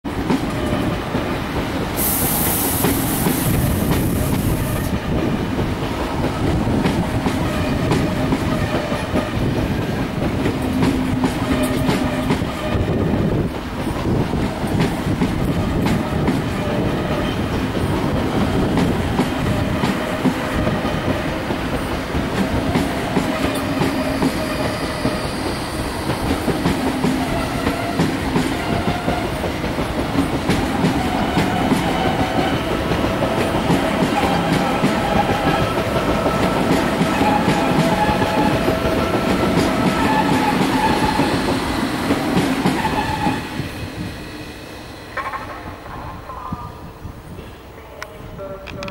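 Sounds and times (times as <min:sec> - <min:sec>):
train wheels clicking over rail joints: 0:00.1 - 0:43.4, 0:45.1 - 0:46.1.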